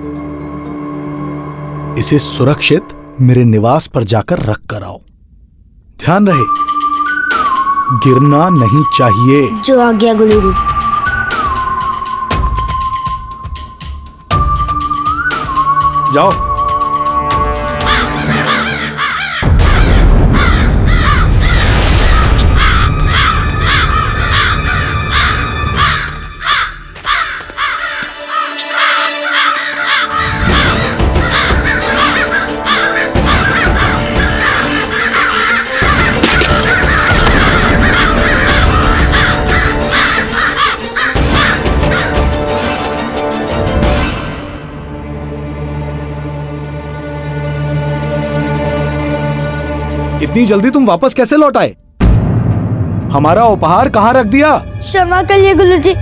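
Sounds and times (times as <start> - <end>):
dramatic background music: 0.0 - 3.6, 6.0 - 56.0
crows cawing: 17.6 - 43.0
heavy low drumming: 52.0 - 56.0.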